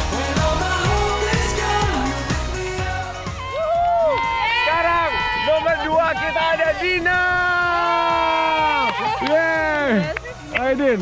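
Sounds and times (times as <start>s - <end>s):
people shouting and cheering: 0.0s - 11.0s.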